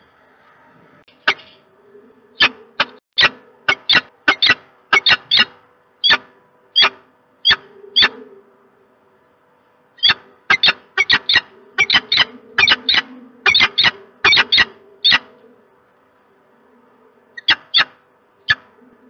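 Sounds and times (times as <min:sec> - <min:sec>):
falcon calling: 0:02.4 - 0:08.4, 0:10.0 - 0:15.4.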